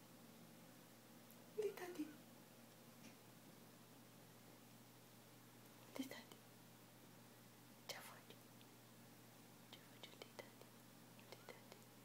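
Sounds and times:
person whispering: 6.0 - 6.4, 7.9 - 8.4, 9.8 - 10.7, 11.3 - 11.8.

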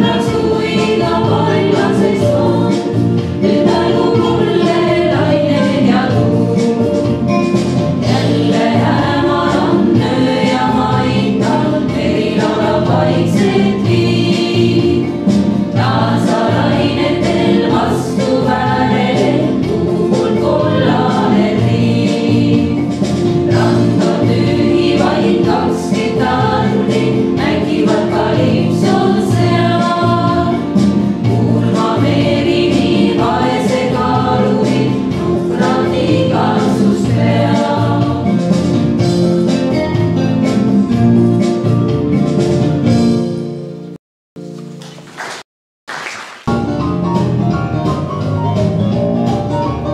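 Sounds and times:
women's choir singing: 0.0 - 6.9, 8.0 - 38.5.

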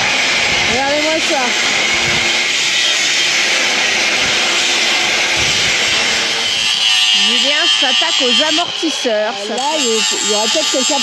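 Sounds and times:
angle grinder cutting steel: 0.0 - 11.0
high steady whine: 0.0 - 11.0.

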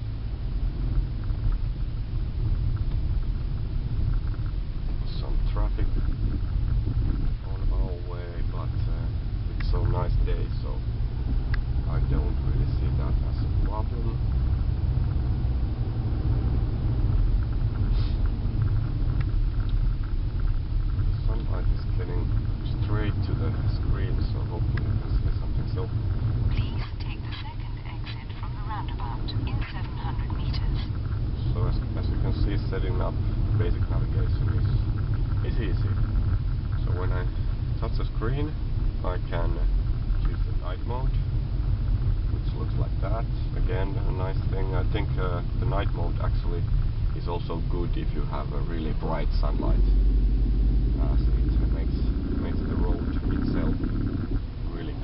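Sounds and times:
car engine and road rumble: 0.0 - 55.0.

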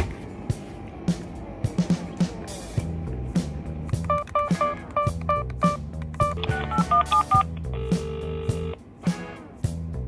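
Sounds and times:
background music with a beat: 0.1 - 10.0
phone keypad tones: 4.1 - 8.8
low phone ringing tone: 6.5 - 8.8.

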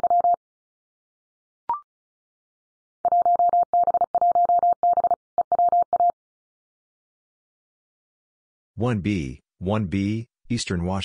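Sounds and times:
morse code tone: 3.1 - 6.2.

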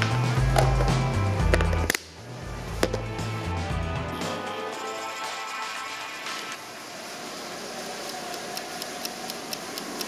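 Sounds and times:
background music: 0.0 - 6.6.

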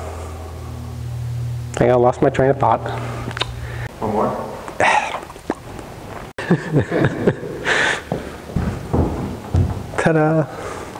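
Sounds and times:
dull thumps: 8.0 - 10.2.

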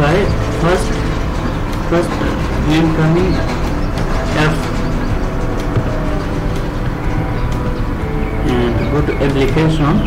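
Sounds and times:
faint steady tones: 0.0 - 10.0
low background rumble: 0.0 - 10.0.

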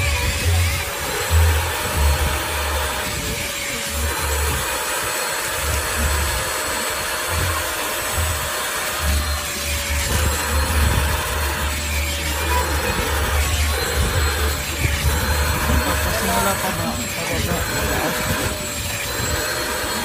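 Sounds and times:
vacuum whining: 0.0 - 20.0.

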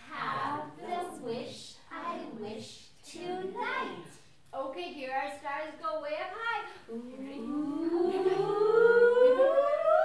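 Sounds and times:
voices singing rising glide: 6.9 - 10.0.

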